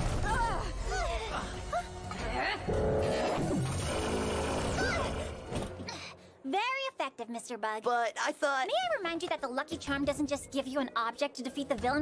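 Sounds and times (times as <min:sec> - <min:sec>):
held background music: 0:00.0 - 0:12.0
cartoon sound effects: 0:03.1 - 0:05.4.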